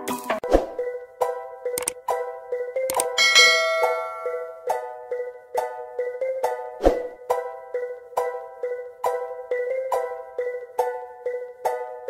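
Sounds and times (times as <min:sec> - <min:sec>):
short click: 0:02.9 - 0:03.1
bell-like notification chime: 0:03.1 - 0:04.8.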